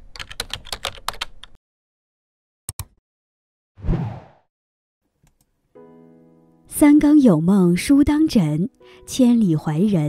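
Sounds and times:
computer keyboard typing: 0:00.1 - 0:01.6.

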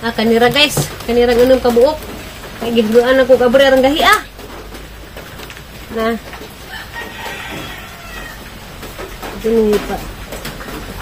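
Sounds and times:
person speaking: 0:00.0 - 0:04.3.

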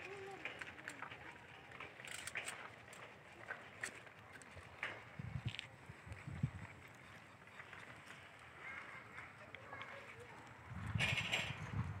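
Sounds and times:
indistinct voices outdoors: 0:00.0 - 0:12.0.

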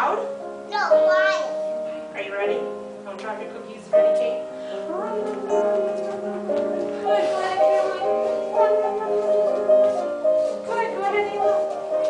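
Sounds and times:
piano melody: 0:00.0 - 0:12.0.

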